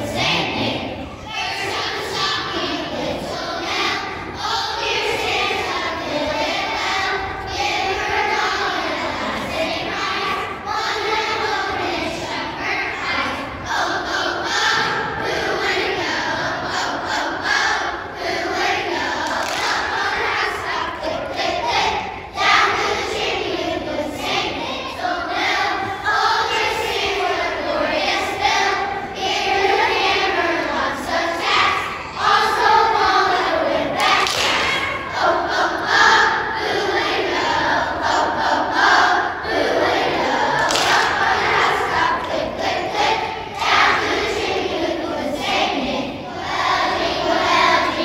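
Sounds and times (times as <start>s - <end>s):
children's choir singing: 0.0s - 48.0s.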